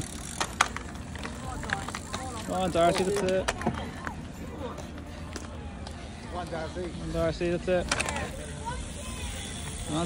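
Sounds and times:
bike running on grass: 0.0 - 3.8
outdoor background: 0.0 - 10.0.

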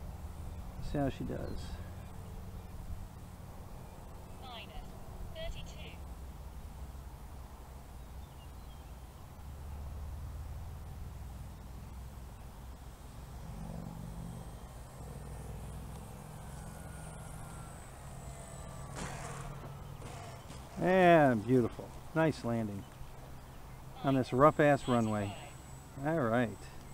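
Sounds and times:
model plane motor whine: 11.2 - 26.9.

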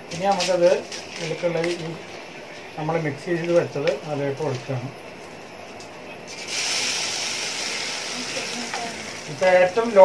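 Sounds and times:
batter sizzling in hot oil: 6.3 - 10.0.

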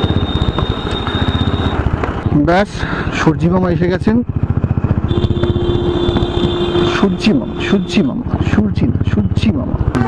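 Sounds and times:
motorcycle engine running: 0.0 - 2.6, 3.3 - 10.0.

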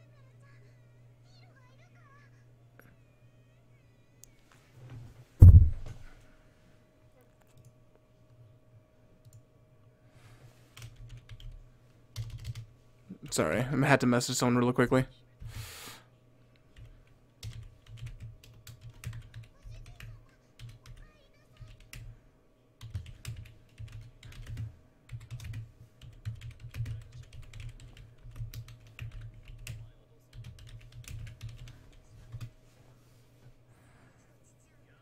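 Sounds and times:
typing on computer keyboard: 10.8 - 11.6, 12.2 - 12.7, 16.7 - 22.1, 22.8 - 32.5.

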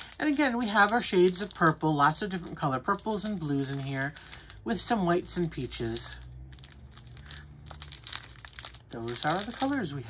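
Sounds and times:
plastic baggies crinkling: 0.0 - 10.0.

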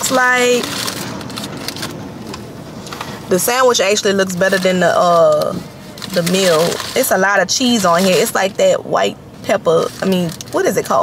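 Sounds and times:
paper wrapper crackling: 0.0 - 2.4, 4.3 - 8.6, 9.7 - 11.0.

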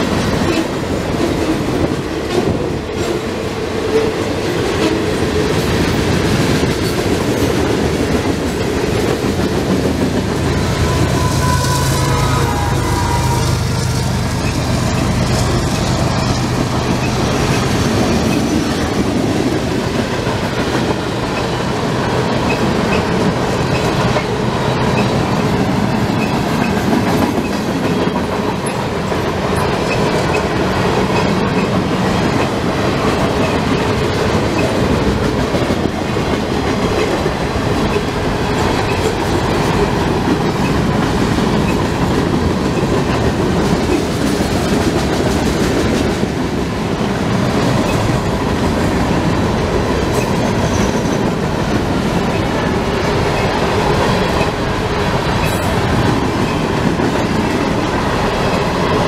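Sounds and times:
steel train wheels on rail: 0.0 - 59.0.

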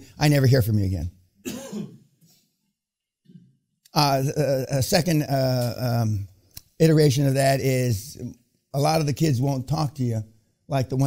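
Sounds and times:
person clearing throat: 1.4 - 2.1.

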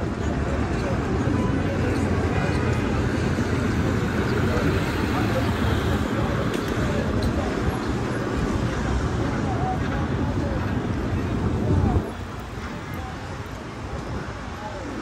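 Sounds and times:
chatter of passers-by: 0.0 - 15.0
traffic rumble: 0.0 - 15.0.

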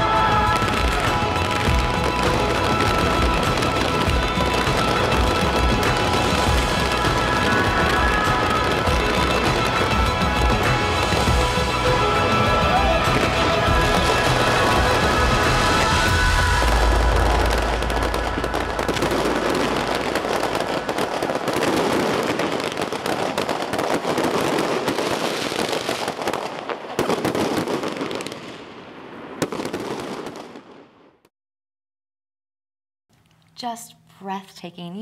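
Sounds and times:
music: 0.0 - 22.6
fireworks crackling and popping: 0.0 - 31.3
deep firework boom: 13.2 - 25.0.

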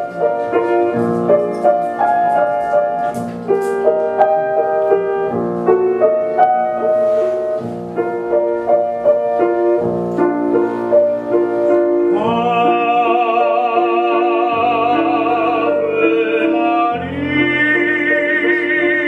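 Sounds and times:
grand piano playing slow classical: 0.0 - 19.0.

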